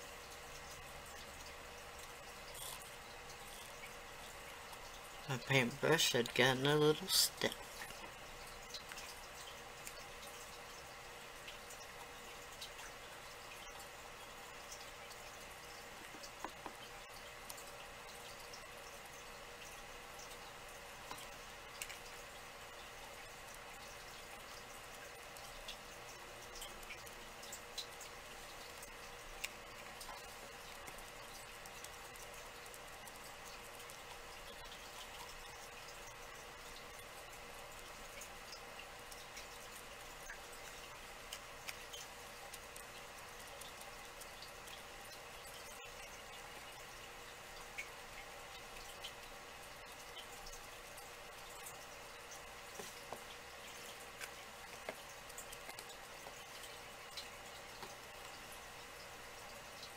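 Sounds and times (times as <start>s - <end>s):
faint room hum: 0.0s - 59.9s
small clicks and taps: 16.0s - 18.6s, 21.0s - 22.2s, 23.5s - 36.2s, 37.7s - 47.0s, 49.9s - 58.4s.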